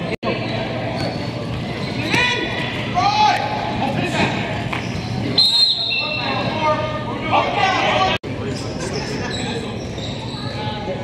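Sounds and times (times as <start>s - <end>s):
faint indistinct voices: 0.0s - 11.0s
sports hall background noise: 0.0s - 11.0s.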